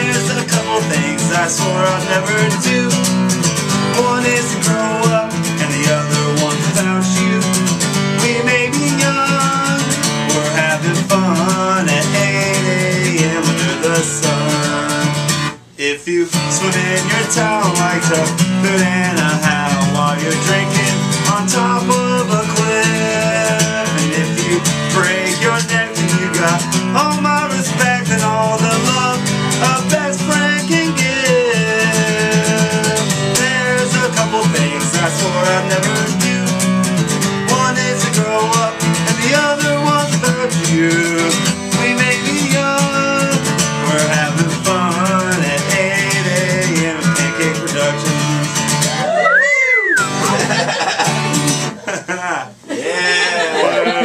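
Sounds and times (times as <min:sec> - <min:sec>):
man singing: 0:00.0 - 0:49.2
acoustic guitar strumming: 0:00.0 - 0:52.4.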